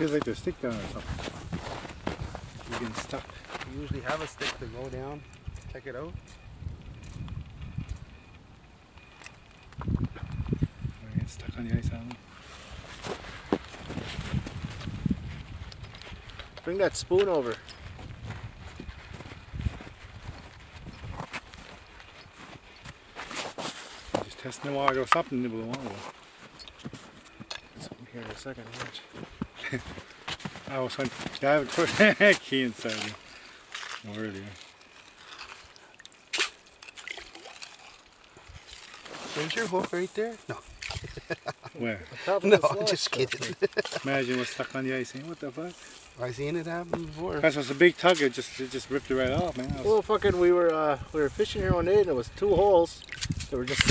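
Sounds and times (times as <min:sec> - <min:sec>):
man talking: 0:00.0 - 0:01.2, 0:02.6 - 0:06.2, 0:11.0 - 0:12.2, 0:16.6 - 0:17.6, 0:24.2 - 0:26.1, 0:27.8 - 0:29.9, 0:30.6 - 0:33.2, 0:34.0 - 0:34.6, 0:39.3 - 0:40.7, 0:41.4 - 0:53.9
wind rumble on microphone: 0:01.0 - 0:02.8, 0:05.2 - 0:08.6, 0:09.6 - 0:12.1, 0:13.8 - 0:21.6, 0:48.9 - 0:53.9
water drips and trickles: 0:31.4 - 0:41.3, 0:52.4 - 0:53.9
scoop splashing into slushy water: 0:36.0 - 0:39.4.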